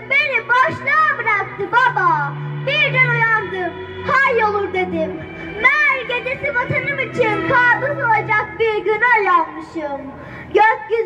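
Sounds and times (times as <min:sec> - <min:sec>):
low backing music: 0:00.0 - 0:10.9
girl reciting into a microphone: 0:00.0 - 0:11.0.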